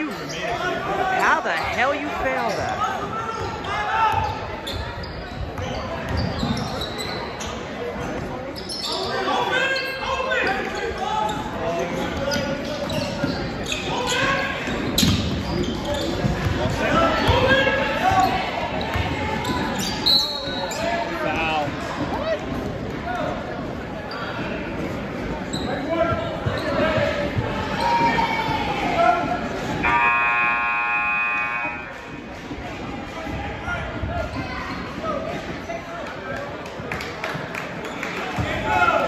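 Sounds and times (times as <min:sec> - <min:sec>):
spectator chatter: 0:00.0 - 0:39.0.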